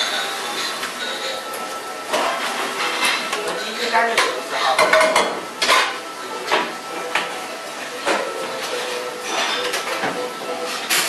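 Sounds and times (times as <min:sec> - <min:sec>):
metal kitchenware clattering: 0:00.0 - 0:07.3, 0:08.0 - 0:11.0
kitchen background noise: 0:00.0 - 0:11.0.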